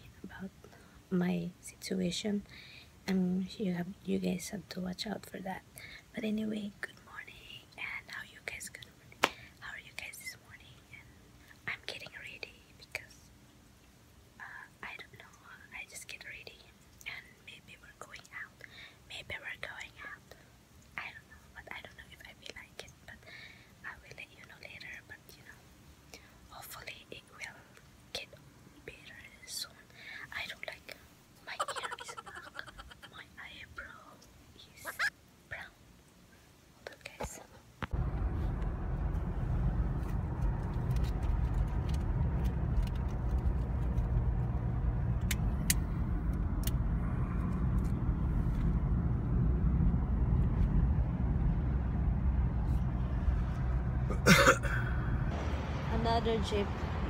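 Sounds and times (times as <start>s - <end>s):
woman whispering: 0.0s - 13.3s, 14.4s - 23.2s, 23.8s - 25.6s, 26.2s - 35.8s, 36.8s - 37.6s.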